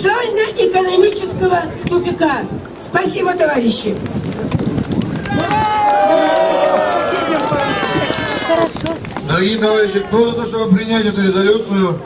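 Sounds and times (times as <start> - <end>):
people clapping: 4.1 - 9.8
crowd shouting and cheering: 5.0 - 10.2.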